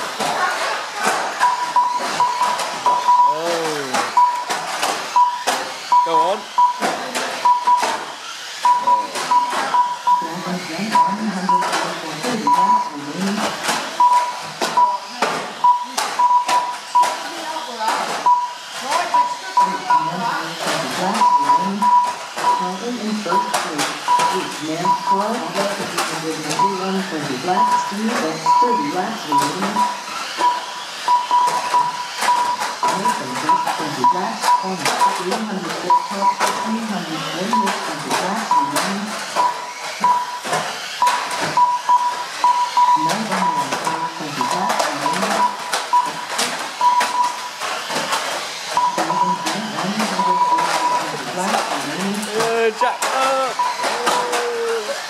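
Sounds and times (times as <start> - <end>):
toy cars clacking together: 0.0 - 10.1, 10.9 - 22.6, 23.2 - 55.0
steady high tone: 1.5 - 4.4
people chattering: 49.1 - 55.0.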